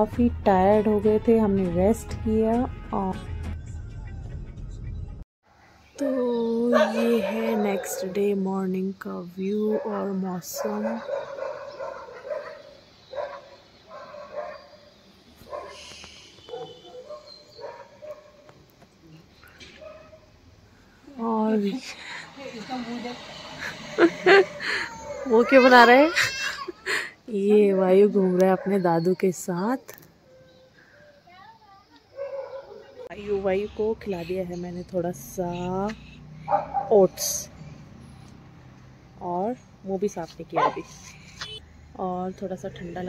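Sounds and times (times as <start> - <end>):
dog barking: 6.7 - 8.2, 9.7 - 15.8, 16.4 - 18.5, 32.1 - 33.1, 36.4 - 37.0, 40.6 - 41.0.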